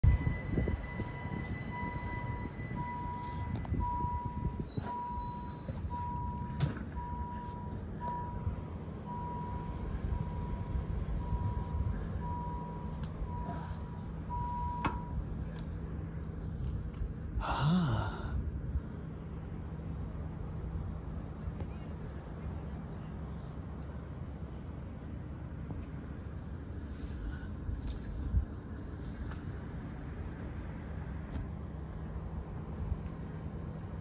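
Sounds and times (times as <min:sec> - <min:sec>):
high electronic beep: 0:00.0 - 0:08.5
train rumbling: 0:00.0 - 0:34.0.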